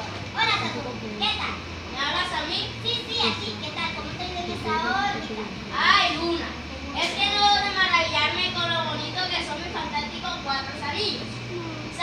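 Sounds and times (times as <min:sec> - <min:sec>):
children talking: 0:00.0 - 0:12.0.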